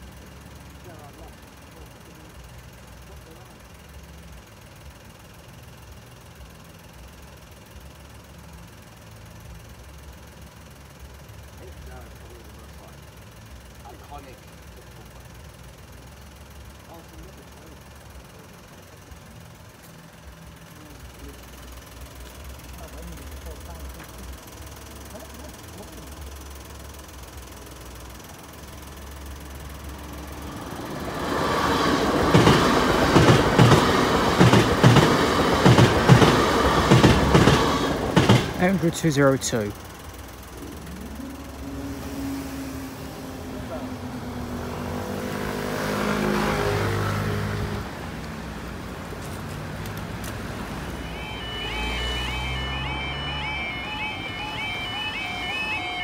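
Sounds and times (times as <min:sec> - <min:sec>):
crossing barriers mechanical hum: 0:00.0 - 0:56.0
diesel train passing: 0:00.0 - 0:56.0
train wheels clattering over rail joints: 0:31.2 - 0:38.8.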